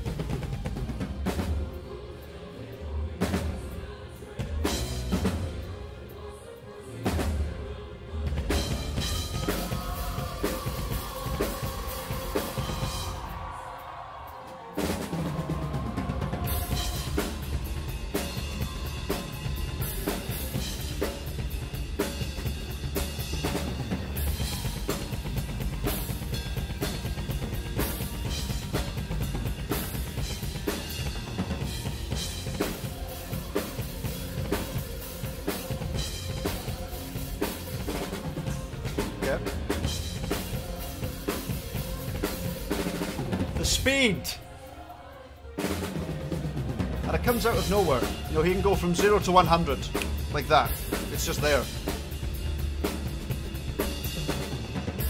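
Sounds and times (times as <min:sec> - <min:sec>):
fast metal drumming: 0:08.5 - 0:13.3, 0:14.8 - 0:44.4, 0:46.0 - 0:55.0.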